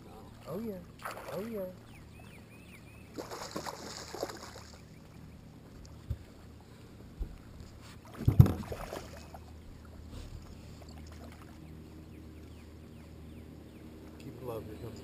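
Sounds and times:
low steady hum: 0:00.0 - 0:15.0
dull knocks on a boat: 0:08.2 - 0:08.8.

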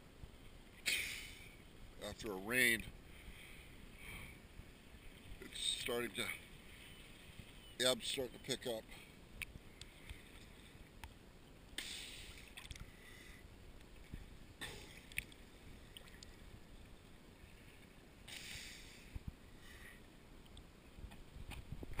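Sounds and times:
small clicks: 0:12.6 - 0:12.9
water sloshing and lapping: 0:13.8 - 0:18.0.

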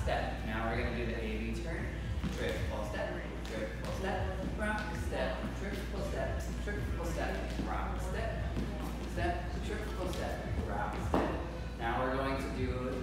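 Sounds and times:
man talking: 0:00.0 - 0:13.0
dance shoes tapping on wooden floor: 0:02.0 - 0:06.4, 0:07.0 - 0:11.4.

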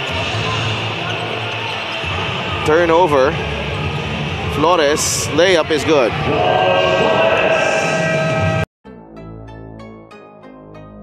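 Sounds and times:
crowd din: 0:00.0 - 0:08.6
music playing: 0:02.0 - 0:11.0.

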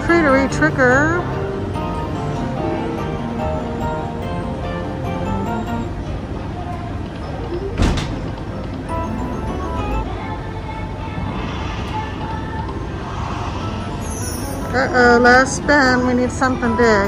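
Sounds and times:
casino background hum: 0:00.0 - 0:17.0
slot machine bonus music: 0:08.8 - 0:10.1
sharp hit: 0:11.3 - 0:15.0.

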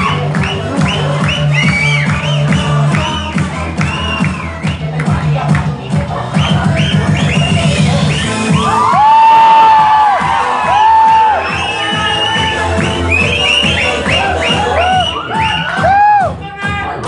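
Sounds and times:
dance music with steady beat: 0:00.0 - 0:17.0
audience whooping and cheering: 0:06.6 - 0:16.4
long loud whoops: 0:08.6 - 0:12.6.

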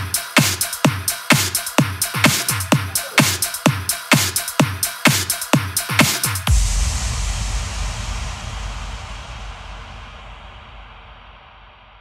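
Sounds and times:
electro house music: 0:00.0 - 0:06.5.

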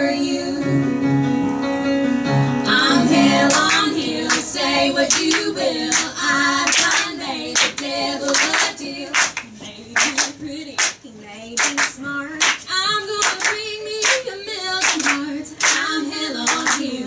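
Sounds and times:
women singing together: 0:00.0 - 0:00.8, 0:02.7 - 0:17.0
hand claps: 0:03.5 - 0:04.4, 0:05.1 - 0:06.1, 0:06.7 - 0:11.0, 0:11.6 - 0:15.9, 0:16.5 - 0:16.9.

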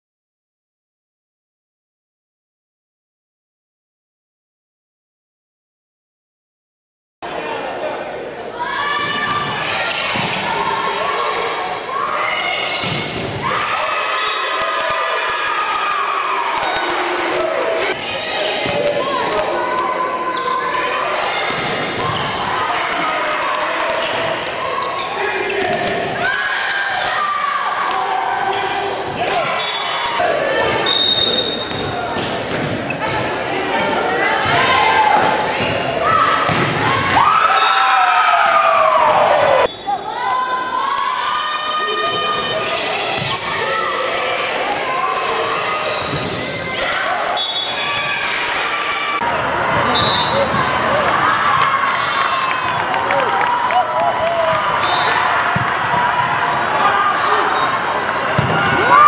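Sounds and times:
crowd chatter in echoing hall: 0:07.2 - 0:59.0
players calling out: 0:07.2 - 0:59.0.

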